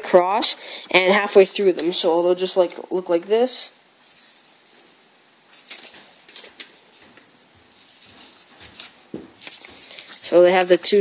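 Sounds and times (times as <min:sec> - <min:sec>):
paper rustling: 0:04.2 - 0:11.0.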